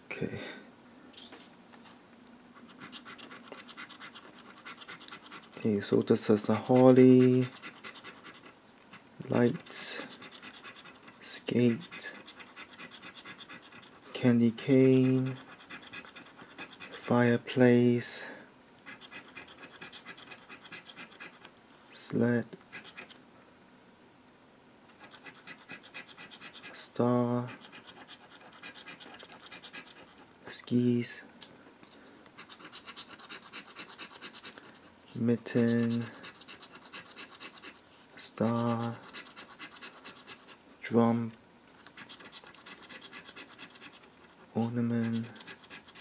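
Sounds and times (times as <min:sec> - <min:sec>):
scraping a scratch ticket: 0:02.6 - 0:17.2, 0:32.4 - 0:34.8, 0:35.4 - 0:37.8, 0:38.4 - 0:40.6, 0:42.0 - 0:46.0
person speaking: 0:05.5 - 0:07.6, 0:09.2 - 0:10.2, 0:11.2 - 0:12.2, 0:14.1 - 0:15.4, 0:35.1 - 0:36.2, 0:38.2 - 0:39.2, 0:44.6 - 0:45.5.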